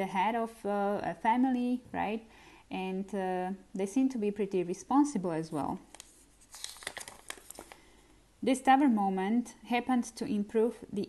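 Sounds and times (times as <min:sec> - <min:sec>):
paper note crinkling: 0:05.9 - 0:08.0.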